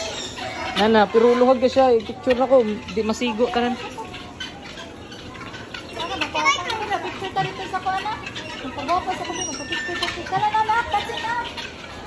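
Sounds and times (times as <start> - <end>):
background chatter: 0.0 - 12.0
children's voices: 0.0 - 12.0.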